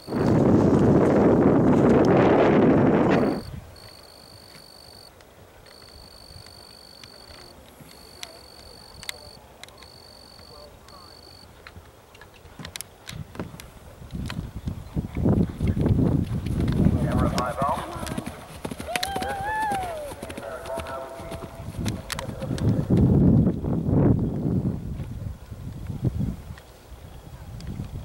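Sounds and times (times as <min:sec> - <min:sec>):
horse hoofbeats galloping on grass: 0:05.7 - 0:26.6.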